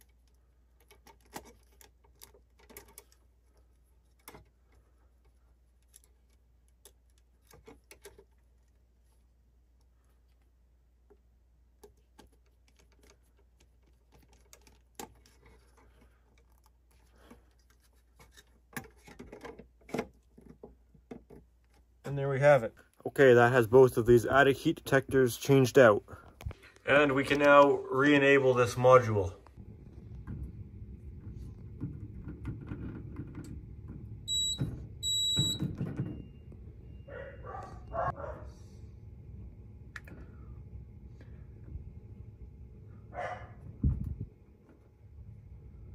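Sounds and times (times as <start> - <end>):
plastic clicks and scrapes: 0.0 - 8.8, 11.8 - 21.9
steady low hum: 22.2 - 45.9.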